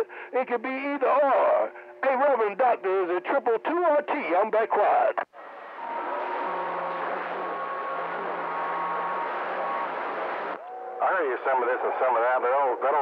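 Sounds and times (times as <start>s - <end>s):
faint steady whistles: 5.4s - 11.2s.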